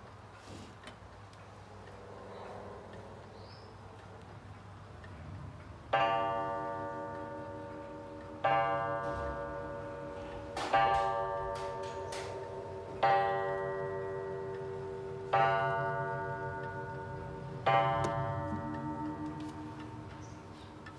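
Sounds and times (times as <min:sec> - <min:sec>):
clock ticking: 0:00.0 - 0:20.9
clock gong strikes: 0:06.0 - 0:20.5.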